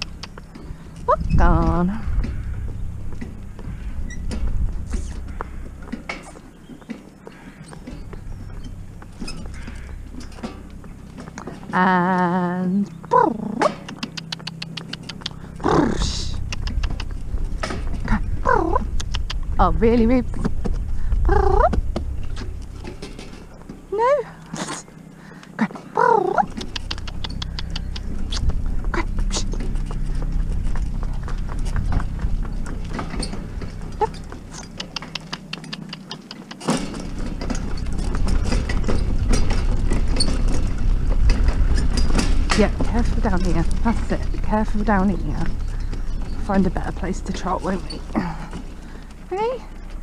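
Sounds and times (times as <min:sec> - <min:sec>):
cart wheels and hooves on gravel: 0:00.0 - 0:50.0.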